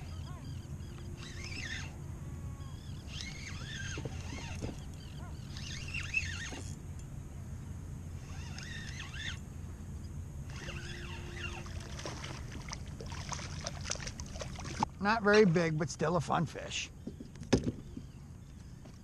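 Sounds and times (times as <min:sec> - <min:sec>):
high sliding bird calls: 0:00.0 - 0:02.0, 0:02.6 - 0:06.6, 0:08.2 - 0:09.4, 0:10.5 - 0:11.8
wind and water rumble: 0:00.0 - 0:19.0.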